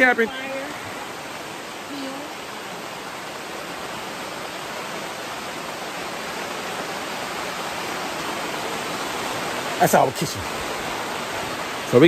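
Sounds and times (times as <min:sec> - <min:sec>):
rain on a tent canopy: 0:00.0 - 0:12.0.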